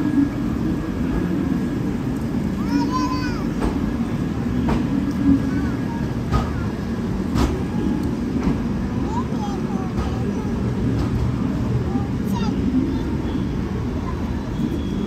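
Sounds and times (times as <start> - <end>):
train wheels rumbling on rails: 0.0 - 15.0.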